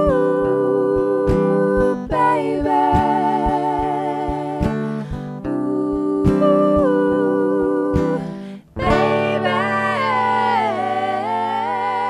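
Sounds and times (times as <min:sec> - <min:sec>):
women singing close harmony: 0:00.0 - 0:12.0
acoustic guitar strummed: 0:08.0 - 0:12.0.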